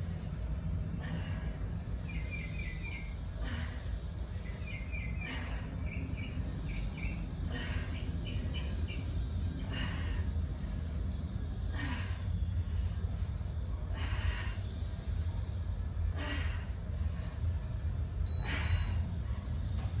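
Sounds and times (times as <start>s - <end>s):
steady low rumble: 0.0s - 20.0s.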